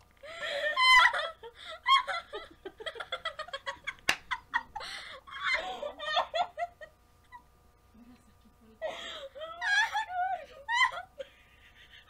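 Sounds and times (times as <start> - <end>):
women laughing with squeals: 0.3 - 7.5, 8.8 - 12.0.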